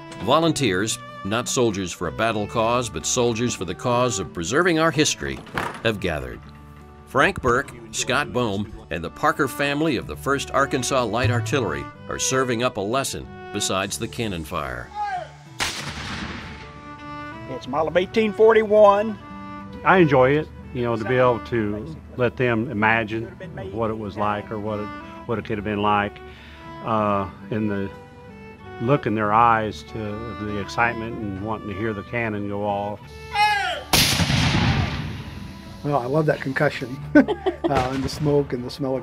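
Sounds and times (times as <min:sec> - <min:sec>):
person shouting: 0:14.9 - 0:15.4, 0:33.3 - 0:33.9
cannon boom: 0:15.6 - 0:16.7, 0:34.0 - 0:35.4, 0:37.8 - 0:38.2.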